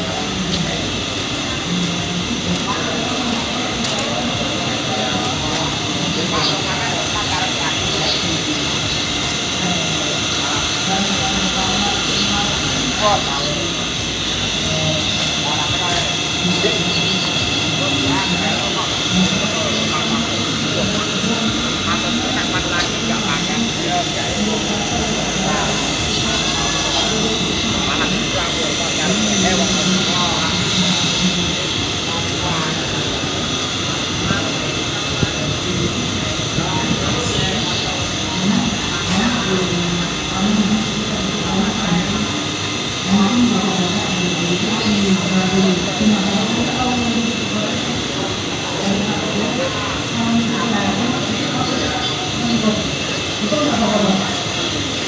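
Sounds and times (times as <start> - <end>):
mill machinery droning: 0.0 - 55.0
people talking: 0.0 - 55.0.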